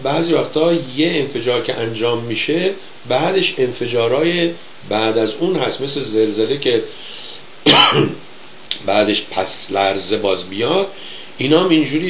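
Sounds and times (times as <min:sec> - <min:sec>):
man clearing throat: 0:07.7 - 0:08.2.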